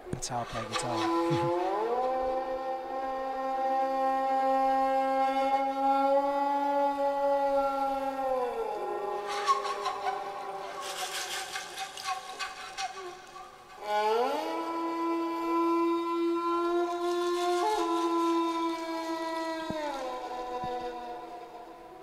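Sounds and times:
bowed string instrument music: 0.0 - 22.0.

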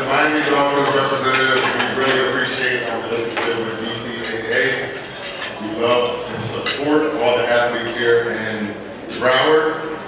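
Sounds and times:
cutlery and dishes clinking: 0.5 - 8.3.

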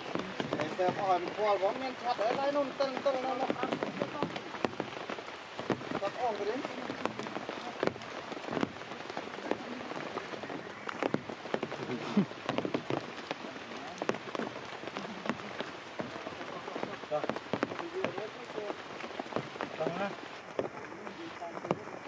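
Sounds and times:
steady rain on stone and leaves: 0.0 - 22.0.

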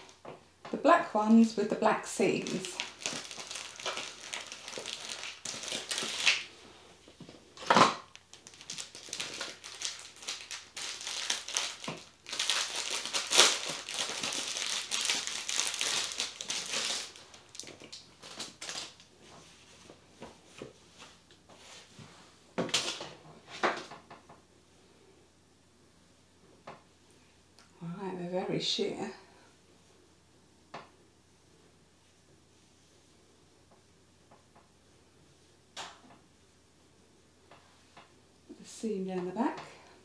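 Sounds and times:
crinkly packaging crackling: 2.0 - 6.5, 8.0 - 19.1.

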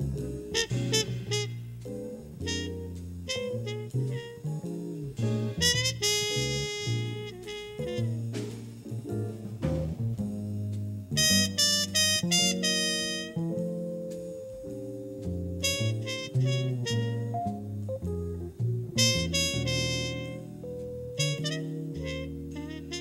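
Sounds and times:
drums: 0.0 - 21.7
double bass: 0.0 - 23.0
trumpet: 0.5 - 8.9, 11.2 - 13.6, 15.6 - 17.6, 19.0 - 23.0.

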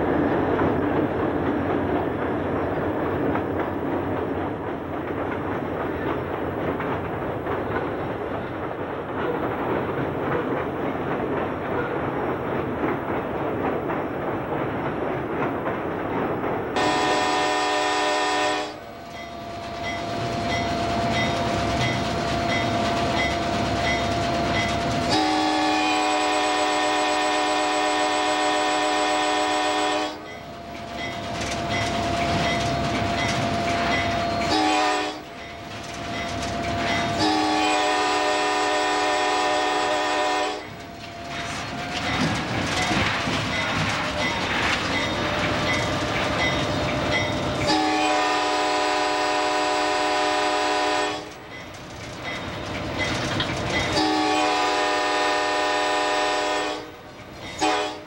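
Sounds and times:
rumble of moving train: 0.0 - 58.0
locomotive air horn: 16.8 - 18.8, 25.1 - 30.2, 34.4 - 35.2, 37.1 - 40.7, 47.6 - 51.3, 54.0 - 56.9, 57.6 - 58.0.

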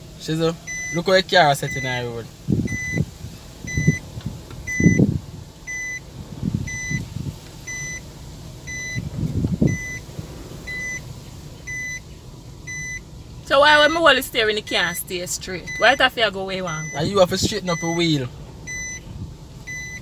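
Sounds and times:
low rumbling: 0.0 - 20.0
car warning beeper: 0.6 - 20.0.

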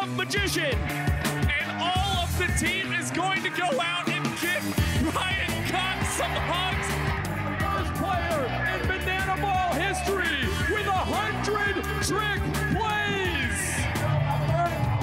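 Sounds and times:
upbeat music with vocals: 0.0 - 15.0
heavy bass line: 0.8 - 15.0.

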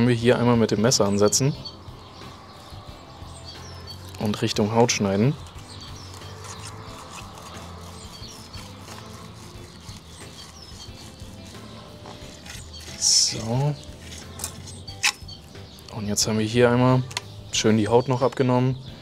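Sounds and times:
soft background music: 0.0 - 19.0
knife scraping glass cutting board: 6.1 - 13.0.

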